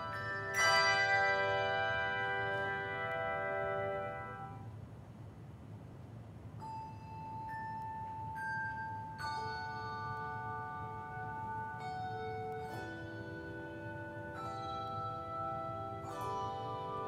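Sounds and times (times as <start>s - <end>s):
handbell choir playing: 0.0s - 4.7s, 6.6s - 17.0s.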